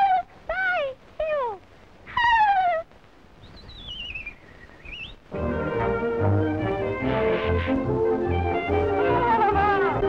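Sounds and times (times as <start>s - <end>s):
cartoon animal wailing yelps: 1.3s - 2.9s.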